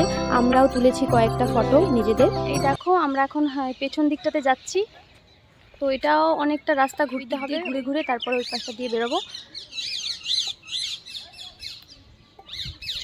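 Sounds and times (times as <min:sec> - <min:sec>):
parakeets screeching: 0:07.0 - 0:11.5.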